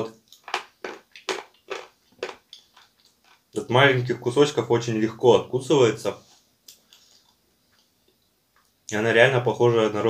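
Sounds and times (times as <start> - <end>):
person chewing dry clay crunches: 0.2 - 3.6.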